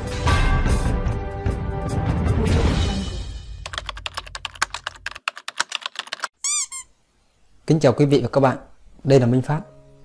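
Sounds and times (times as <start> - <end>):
keyboard typing clicks: 3.7 - 6.3.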